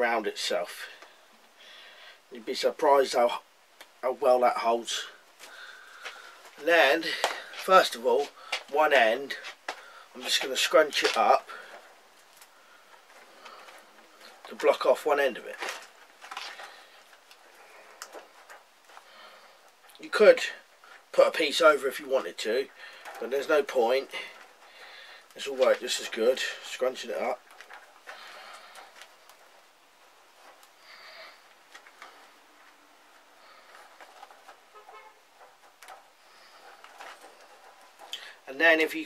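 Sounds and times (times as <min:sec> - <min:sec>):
chicken wire scrunching: 0:05.4 - 0:39.0.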